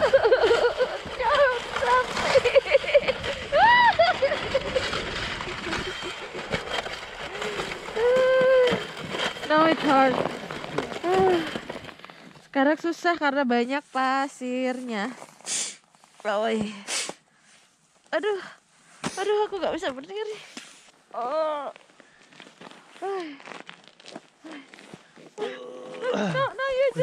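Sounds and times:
steel runners scraping on icy road: 0.0s - 16.6s
person crying out: 25.4s - 27.0s.

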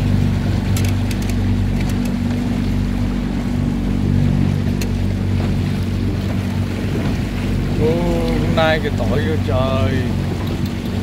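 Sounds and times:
boat engine running: 0.0s - 11.0s
water washing against hull: 0.0s - 11.0s
light clicks: 0.7s - 2.3s, 10.3s - 11.0s.

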